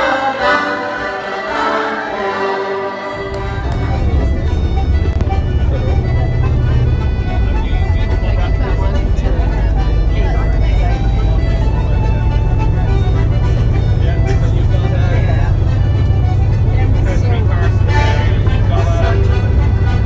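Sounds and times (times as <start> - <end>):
music: 0.0 - 20.0
passengers' voices: 0.0 - 20.0
coach engine rumble: 1.8 - 20.0
road noise: 2.7 - 20.0.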